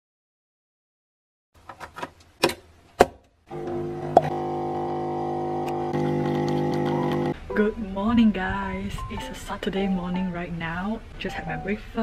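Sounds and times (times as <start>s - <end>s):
coffee machine pump humming: 3.5s - 7.4s.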